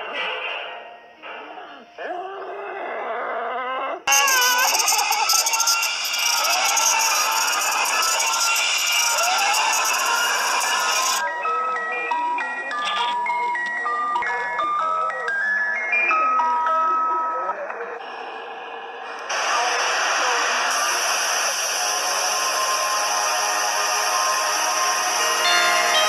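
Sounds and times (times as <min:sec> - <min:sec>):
harsh distorted noise: 0:04.1 - 0:11.2, 0:18.0 - 0:26.0
simple melody of short notes: 0:25.4 - 0:26.0.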